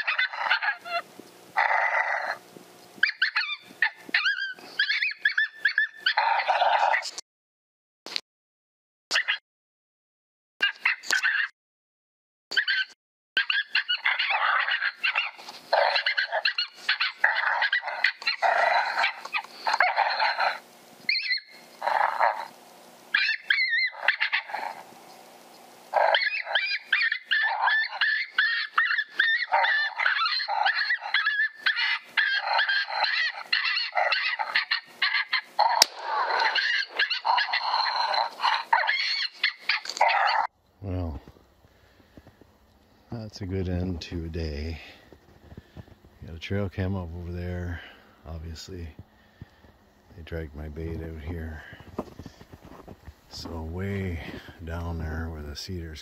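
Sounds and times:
recorded coyote yips and howls: 0.0 - 2.4, 3.0 - 7.1, 10.6 - 11.5, 12.6 - 22.5, 23.1 - 24.8, 26.0 - 40.5.

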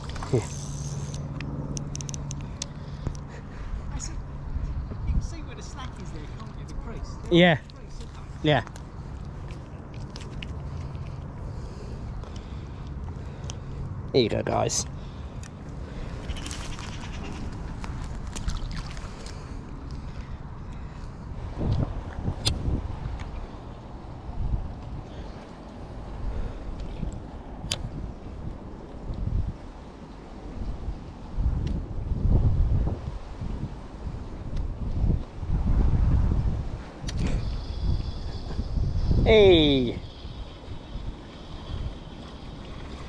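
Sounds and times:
wind buffeting microphone: 1.5 - 43.0.

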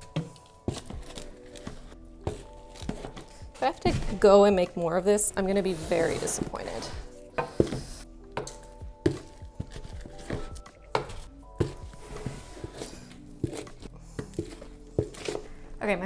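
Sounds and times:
soft background music: 0.0 - 16.0
trowel scraping soil in bucket: 5.5 - 7.0.

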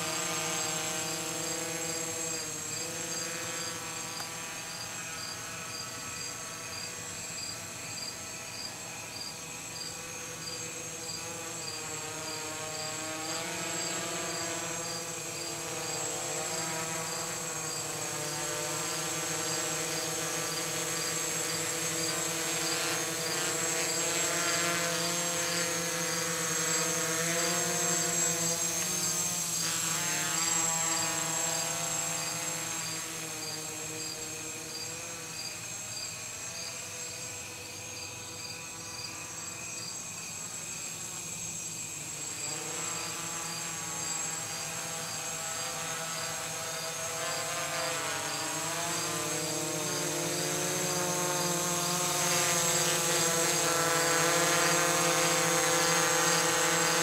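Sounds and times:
quadcopter propellers whining: 0.0 - 57.0
crickets chirping: 0.1 - 57.0.

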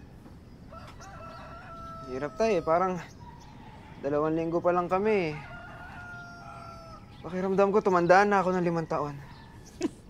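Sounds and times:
faint rooster crowing: 0.4 - 7.3, 8.6 - 10.0.

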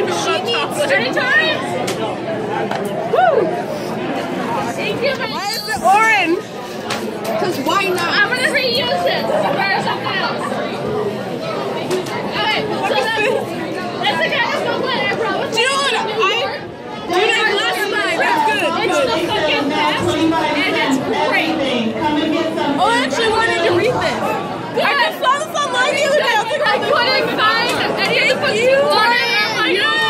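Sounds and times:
people talking over one another: 0.0 - 30.0.

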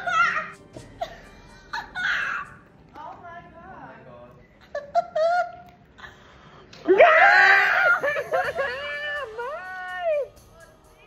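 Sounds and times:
high-pitched human scream: 6.9 - 8.0.

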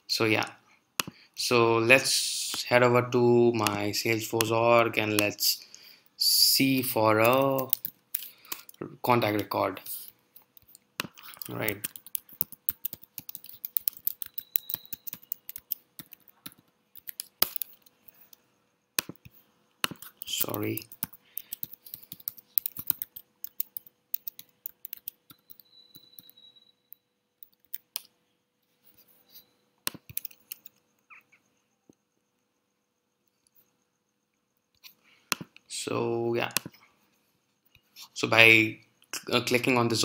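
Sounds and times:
keyboard typing: 6.6 - 18.4, 19.0 - 26.6, 27.4 - 28.1, 28.9 - 30.8.

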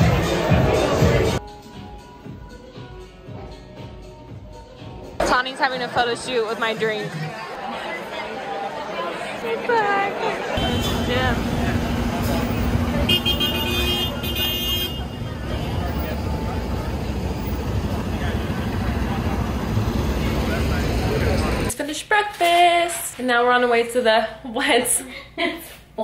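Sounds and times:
voices chattering: 5.2 - 21.7
traffic rumble: 9.1 - 21.7
vehicle horn: 10.5 - 17.5.

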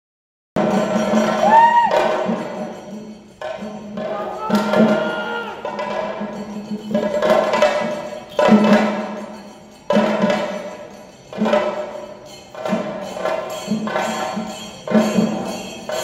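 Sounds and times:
drums beaten in fast rolls: 0.6 - 16.0.

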